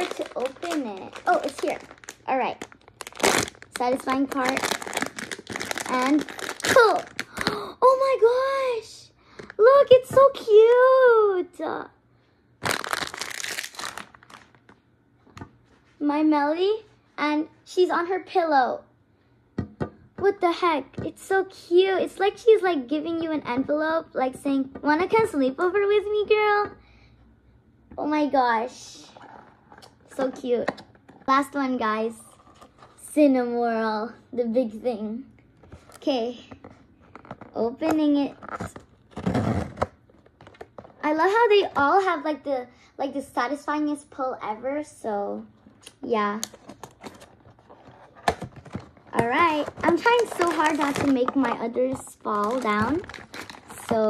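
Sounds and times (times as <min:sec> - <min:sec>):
plastic wrapping crinkling: 0:00.0 - 0:07.5, 0:12.6 - 0:14.8, 0:46.4 - 0:54.0.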